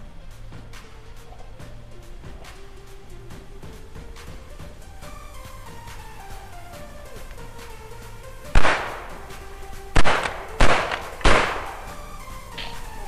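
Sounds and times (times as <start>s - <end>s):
background music: 0.0s - 13.0s
shotgun shots: 8.5s - 13.0s.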